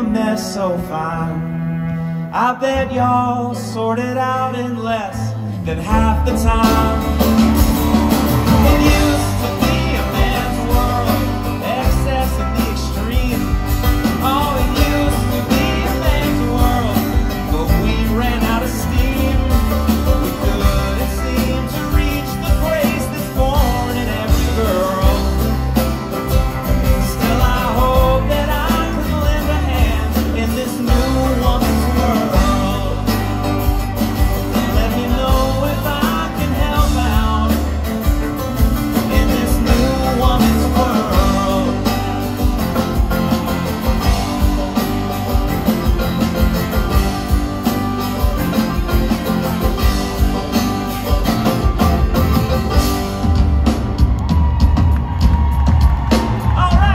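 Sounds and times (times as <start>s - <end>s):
acoustic guitar: 0.0s - 56.9s
banjo: 0.0s - 56.9s
electric bass: 0.0s - 56.9s
drum kit: 5.8s - 56.9s.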